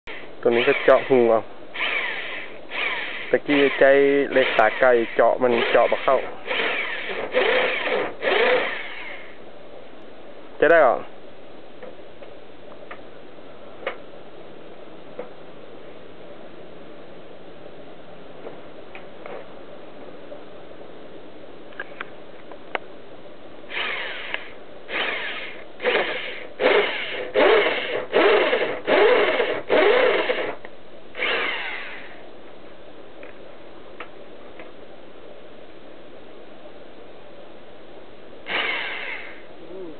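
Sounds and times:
electric drill whining: 0.1 - 1.2, 1.8 - 9.4, 23.7 - 30.6, 31.2 - 32.2, 38.5 - 39.5.

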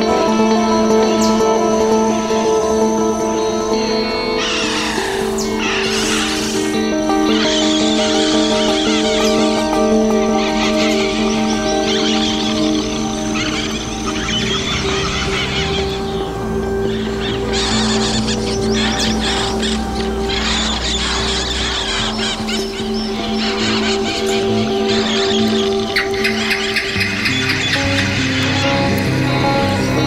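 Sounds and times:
held drone notes: 0.0 - 30.0
low note pattern: 0.0 - 30.0
chattering high electronic sounds: 0.2 - 30.0.

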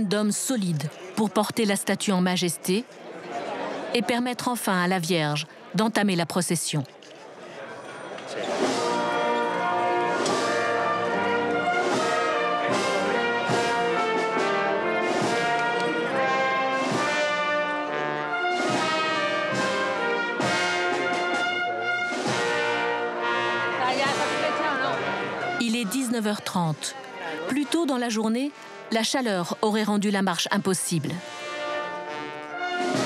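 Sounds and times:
brass band playing: 8.4 - 33.0.

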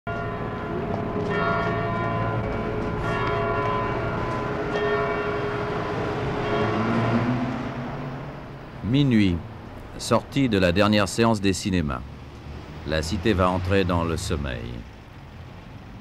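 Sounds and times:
church bells tolling: 0.1 - 9.2.

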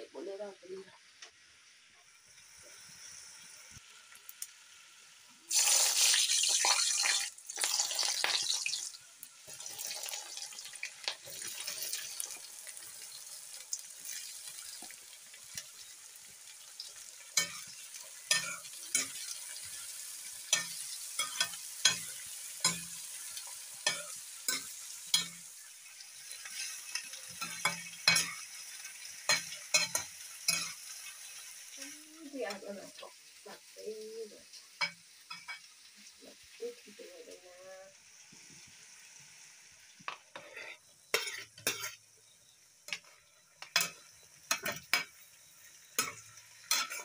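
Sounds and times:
vegetables sizzling in hot oil: 0.0 - 47.0
metal spatula scraping pan: 17.4 - 19.9, 40.1 - 42.0, 46.0 - 47.0.

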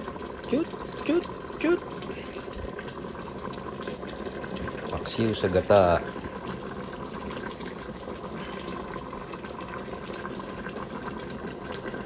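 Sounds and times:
broth boiling in a pot: 0.0 - 12.0.

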